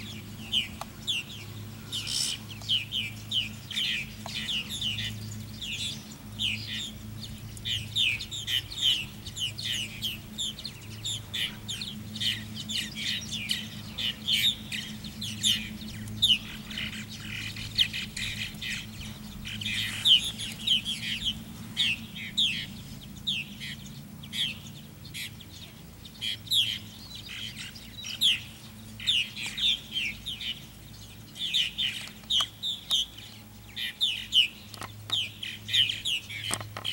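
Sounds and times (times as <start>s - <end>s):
birds chattering: 0.0s - 36.9s
faint low hum: 0.0s - 36.9s.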